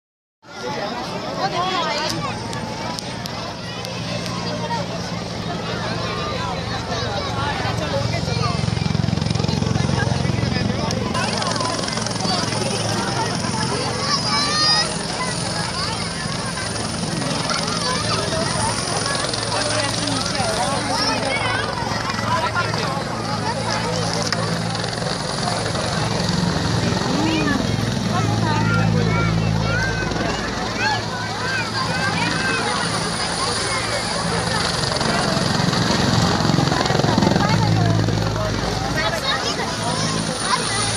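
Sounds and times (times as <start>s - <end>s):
crowd chatter: 0.4s - 40.9s
helicopter rotor and engine drone: 0.4s - 40.9s.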